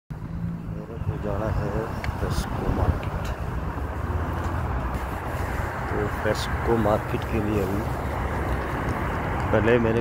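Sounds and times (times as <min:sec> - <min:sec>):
cars going by: 0:00.1 - 0:10.0.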